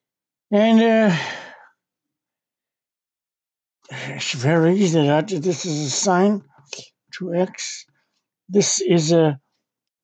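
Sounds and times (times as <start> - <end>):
man saying uh: 3.9 - 6.4, 7.2 - 7.8, 8.5 - 9.4.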